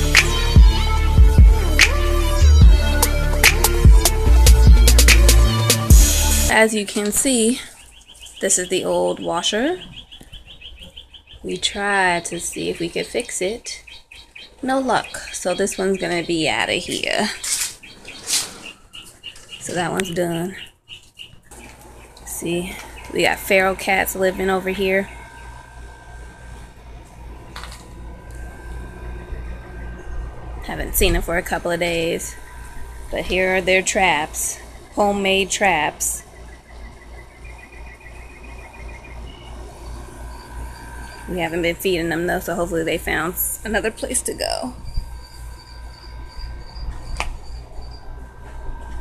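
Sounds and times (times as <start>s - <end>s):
steady low rumble: 0.0s - 6.6s, 21.8s - 49.0s
faint high pulsing chirr: 0.0s - 49.0s.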